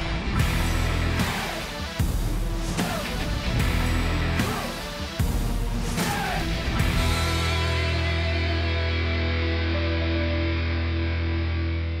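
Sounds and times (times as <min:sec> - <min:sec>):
distorted electric guitar chord: 0:00.0 - 0:01.9, 0:06.8 - 0:12.0.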